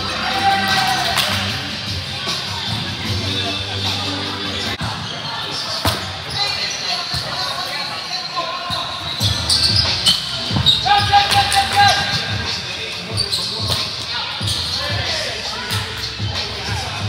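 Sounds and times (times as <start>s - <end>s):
players chattering and calling: 0.0s - 17.0s.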